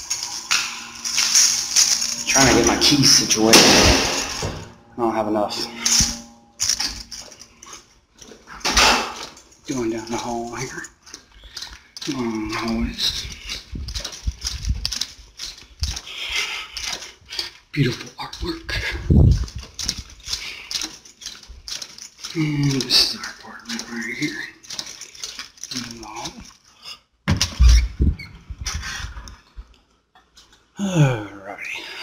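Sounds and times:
keys rattling in door lock: 0.0 - 4.8, 5.6 - 26.7.

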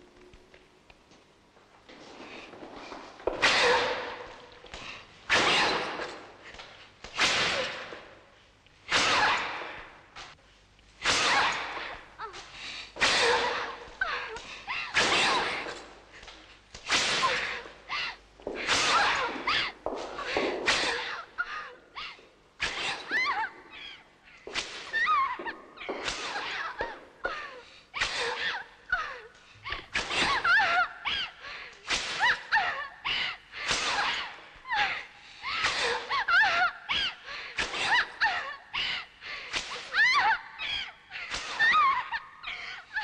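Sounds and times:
whip lashing: 5.3 - 8.1, 8.9 - 10.4, 11.0 - 12.0, 14.4 - 15.9, 16.8 - 17.6, 18.6 - 21.1, 24.5 - 25.0, 25.9 - 26.7, 31.8 - 32.4, 33.6 - 34.3, 39.5 - 39.9.

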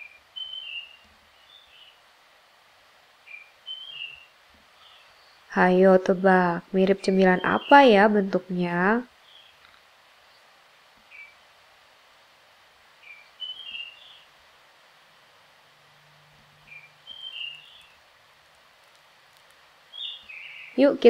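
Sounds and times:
faint bird chirps: 0.0 - 2.0, 3.2 - 5.5, 9.2 - 11.6, 13.0 - 14.4, 16.1 - 18.0, 19.9 - 21.0
quiet hiss: 0.0 - 21.0.

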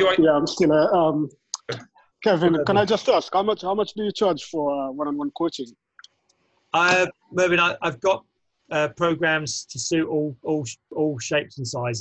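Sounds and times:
man talking over video call: 0.0 - 5.7, 6.8 - 12.0.

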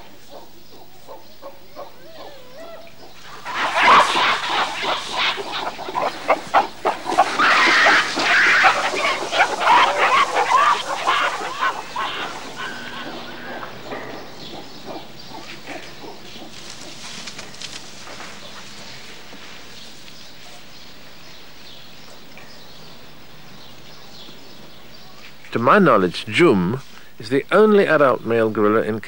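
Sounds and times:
gorillas calling: 0.0 - 28.8.

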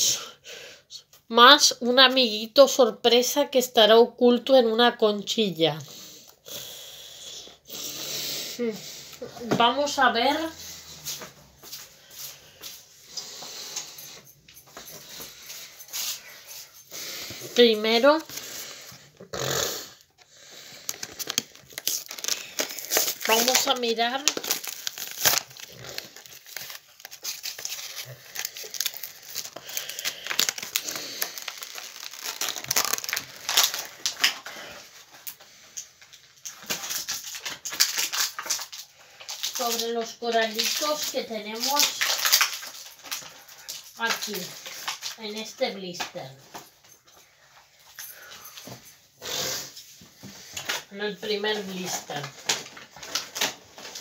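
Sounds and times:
packaging rustling and scraping: 20.2 - 46.9, 49.6 - 54.0.

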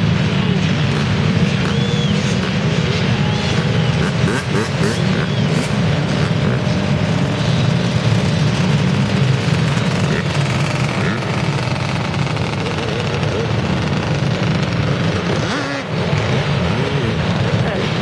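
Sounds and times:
dirt bike engines running: 0.0 - 18.0.

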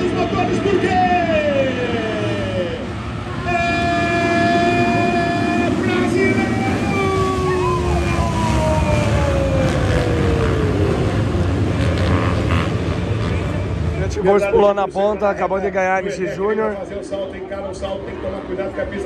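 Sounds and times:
motocross bike engines revving: 0.0 - 19.0.

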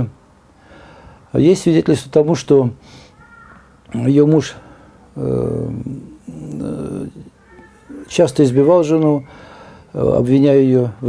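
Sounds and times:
man saying uh: 5.2 - 9.3, 9.9 - 11.0.

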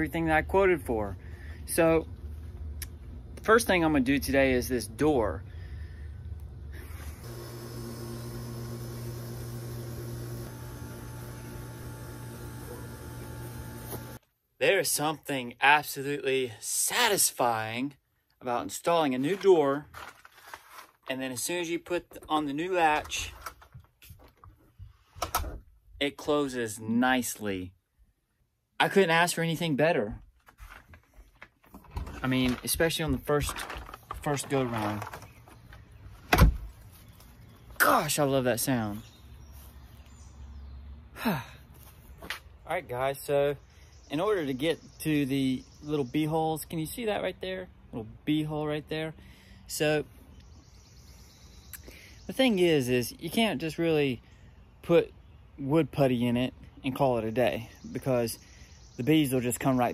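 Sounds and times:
machine hum: 6.2 - 14.2
door shutting and latching: 36.3 - 36.7.

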